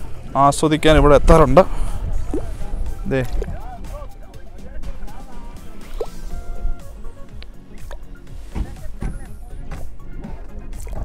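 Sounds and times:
background music: 0.0 - 11.0
mud bubble plop: 2.3 - 2.5.

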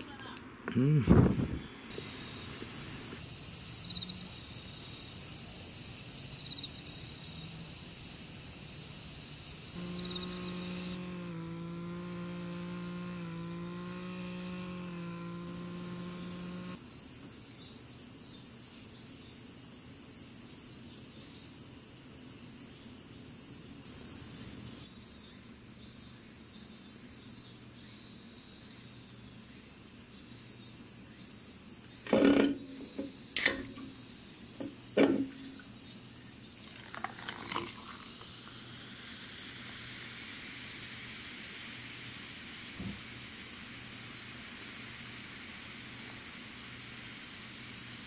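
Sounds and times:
insects trilling: 1.6 - 48.0.

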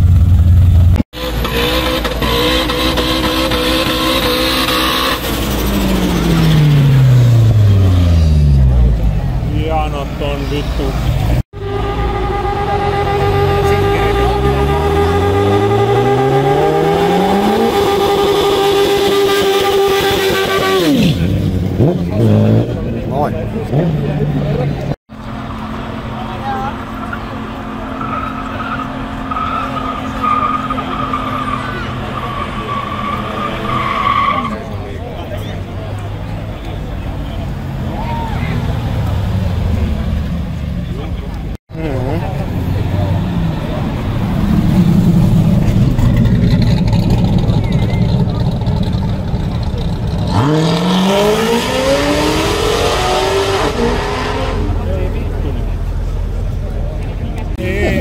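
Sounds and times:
engine rumbling low: 0.0 - 19.0, 34.6 - 58.0
car engine revving: 0.0 - 58.0
tyres squealing: 26.8 - 34.8.

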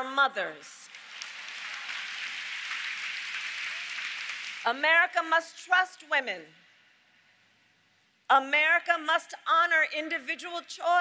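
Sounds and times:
large audience applauding: 0.9 - 4.7.

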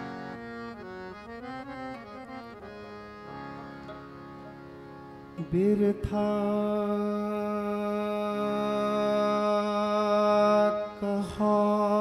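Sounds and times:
harmonium drone chord: 0.0 - 12.0.

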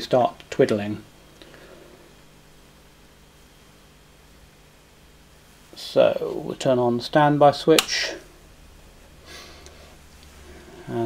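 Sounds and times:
guitar amplifier hum: 0.0 - 11.0
soft breath: 1.4 - 2.2, 9.2 - 11.0.

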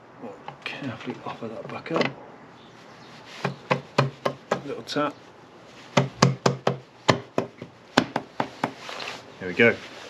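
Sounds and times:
sharp knocks on engine cover: 3.4 - 4.7, 6.0 - 8.8.

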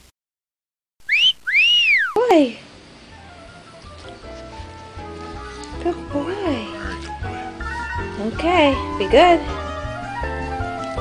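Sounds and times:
whistle sound effect: 1.0 - 2.2.

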